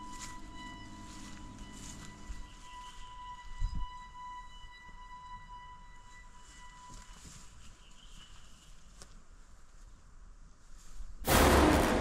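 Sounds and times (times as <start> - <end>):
bump: 11.3 - 12.0
low rumble: 11.3 - 12.0.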